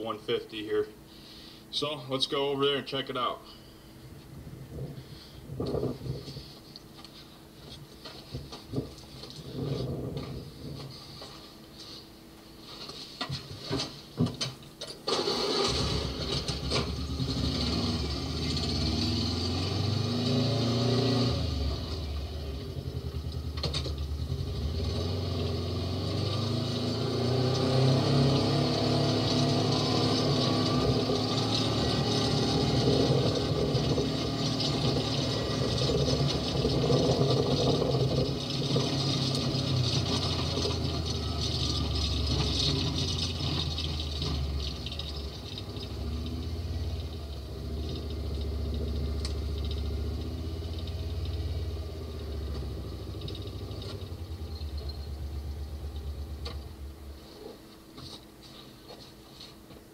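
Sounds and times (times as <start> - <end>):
vehicle engine running: 15.5 - 58.1.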